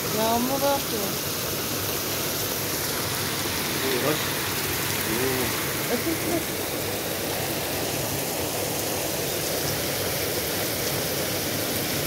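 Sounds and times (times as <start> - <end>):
heavy rain on pavement and cars: 0.0 - 12.0.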